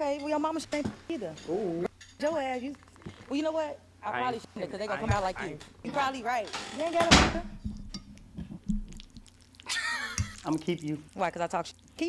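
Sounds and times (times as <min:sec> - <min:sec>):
person laughing: 0:09.6 - 0:10.5.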